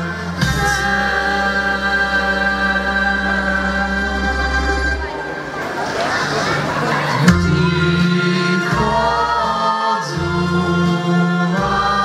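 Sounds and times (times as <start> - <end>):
mixed choir singing folk song: 0.0 - 12.0.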